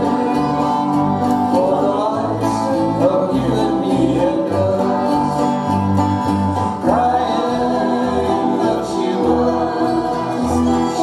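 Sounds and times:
person singing: 0.0s - 5.8s, 6.4s - 11.0s
bluegrass band playing: 0.0s - 11.0s.

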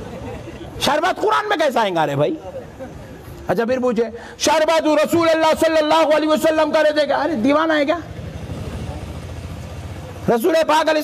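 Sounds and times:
engine running: 8.0s - 10.3s.

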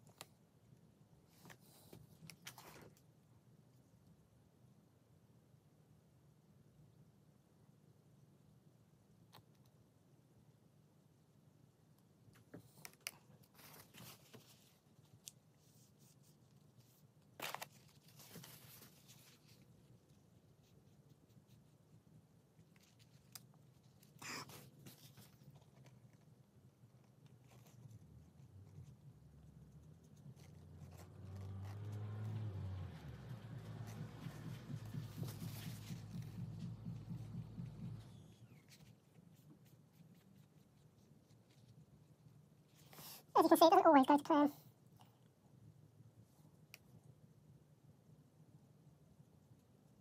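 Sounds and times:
soft rustles: 12.4s - 26.4s, 27.0s - 43.2s
low hum: 31.4s - 38.7s
low fluttering rumble: 31.9s - 38.4s.

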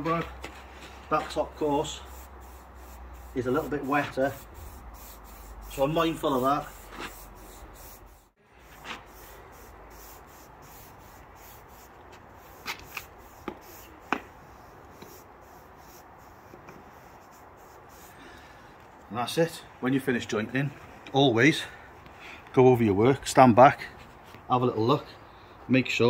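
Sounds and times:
brush scratching over brickwork: 0.0s - 18.3s.

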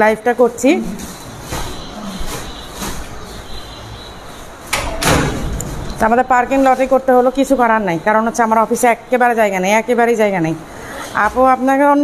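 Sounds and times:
rustling scraping noises: 0.0s - 4.8s, 5.4s - 8.0s, 10.8s - 12.0s
cardboard and plastic rustling: 0.2s - 3.8s.

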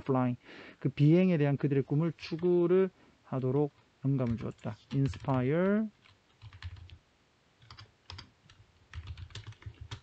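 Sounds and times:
computer keyboard typing: 3.6s - 7.0s, 7.6s - 10.0s.

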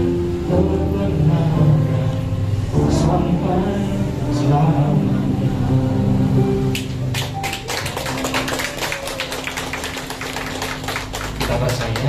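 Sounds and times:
instrumental backing music: 0.0s - 12.0s
congregation applauding: 6.7s - 12.0s.

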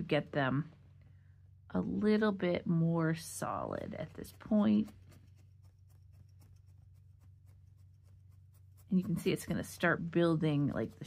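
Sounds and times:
low steady hum: 0.0s - 11.0s
felting needle ticks: 3.9s - 9.8s.

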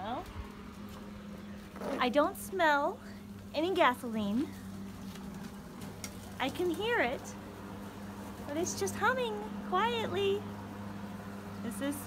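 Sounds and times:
electric lawn mower humming: 4.2s - 12.0s.

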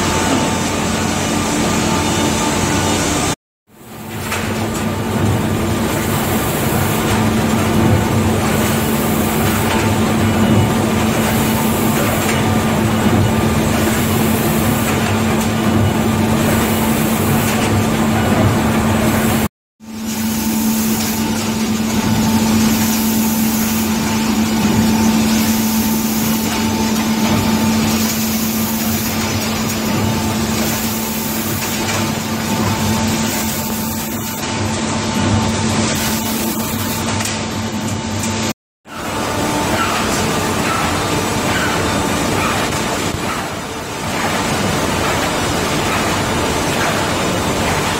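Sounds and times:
binding machine hum and clatter: 0.0s - 47.9s.

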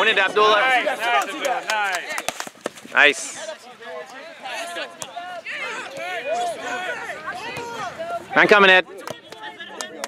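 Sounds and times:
spectators and players shouting: 0.0s - 2.3s, 3.2s - 10.0s.

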